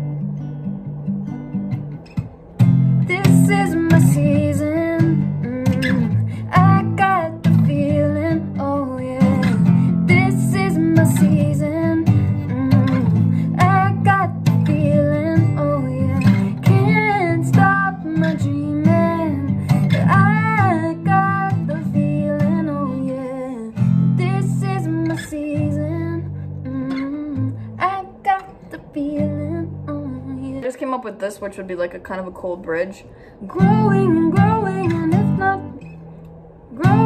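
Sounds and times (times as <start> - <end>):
acoustic guitar strumming: 0.0 - 37.0
woman singing: 3.0 - 36.0, 36.7 - 37.0.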